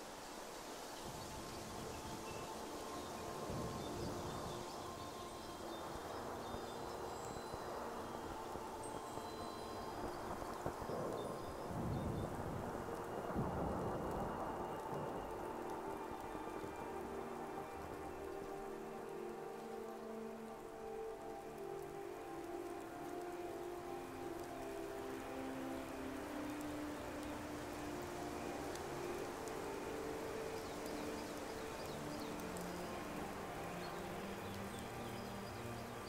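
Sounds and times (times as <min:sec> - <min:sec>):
soft music with held notes: 0:00.0 - 0:36.0
steady rushing hiss: 0:00.0 - 0:36.0.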